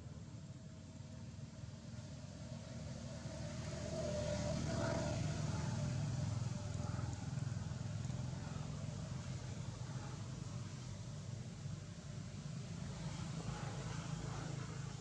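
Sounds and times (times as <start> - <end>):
vehicle engine passing by: 2.0 - 10.8.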